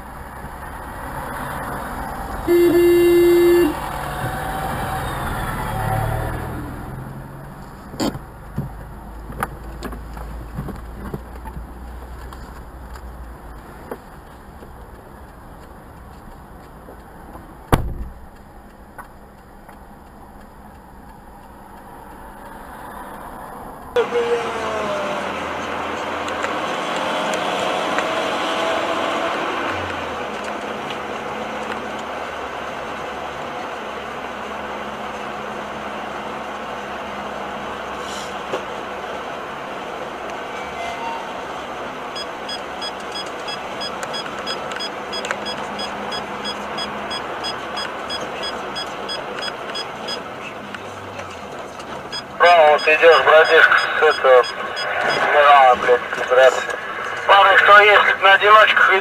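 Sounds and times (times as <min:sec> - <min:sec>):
engine and road rumble: 0:00.0 - 0:59.0
tyre and wind noise: 0:07.5 - 0:19.3
sharp knock: 0:17.7 - 0:18.2.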